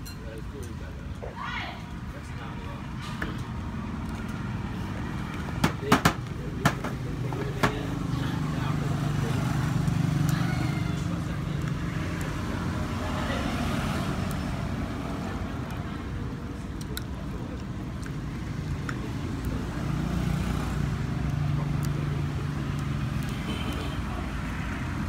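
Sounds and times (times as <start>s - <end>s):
sharp knocks: 5.6s - 7.0s.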